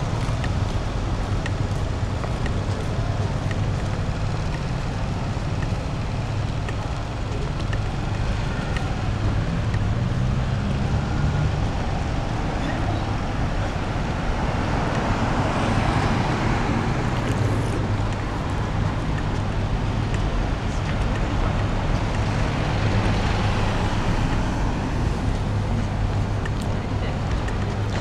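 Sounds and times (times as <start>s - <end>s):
low traffic rumble: 0.0s - 28.0s.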